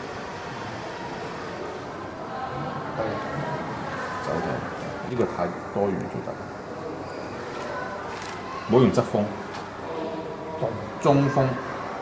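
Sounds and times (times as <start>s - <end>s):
steady fan hiss: 0.0s - 12.0s.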